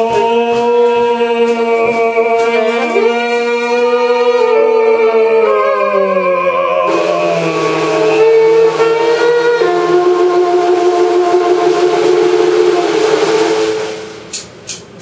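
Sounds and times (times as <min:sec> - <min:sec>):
alto saxophone held notes: 0:06.9 - 0:14.3
sharp percussive hits: 0:06.9 - 0:15.0.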